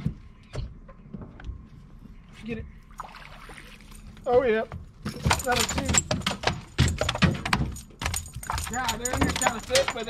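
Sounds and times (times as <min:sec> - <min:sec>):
fish splashing at the surface: 0:03.0 - 0:03.9.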